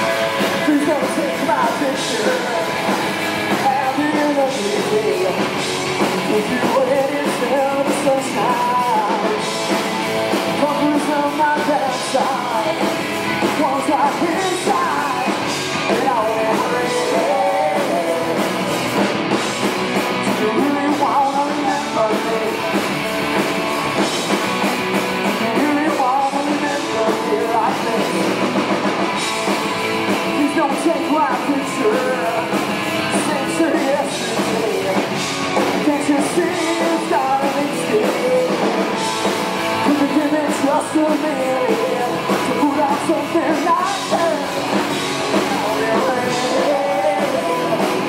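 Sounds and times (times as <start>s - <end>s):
man singing: 0.0s - 19.1s, 20.1s - 24.1s, 25.2s - 28.6s, 30.1s - 48.0s
electric guitar: 0.0s - 48.0s
rock band playing: 0.0s - 48.0s.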